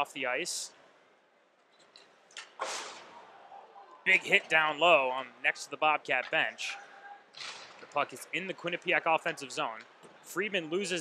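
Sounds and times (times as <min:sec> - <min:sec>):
short rushing breath: 0:02.6 - 0:03.2.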